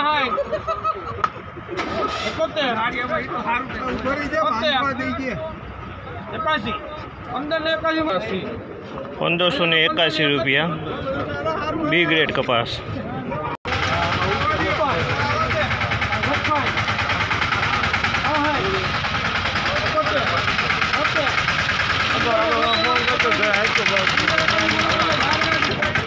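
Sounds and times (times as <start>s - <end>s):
crowd of men chattering: 0.0s - 26.0s
diesel engine idling: 13.7s - 26.0s.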